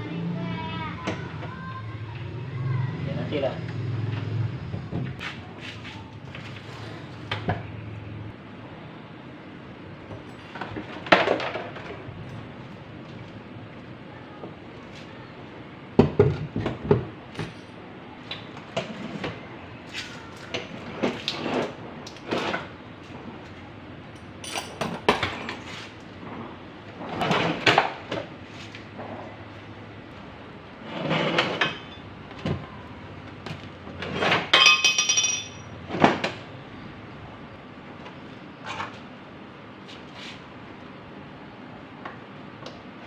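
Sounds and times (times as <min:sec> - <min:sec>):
metal clanks and scrapes: 0:30.8 - 0:32.1.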